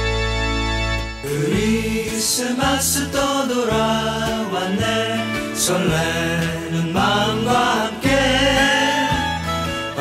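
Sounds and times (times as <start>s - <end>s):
pop song with singing: 1.2s - 10.0s.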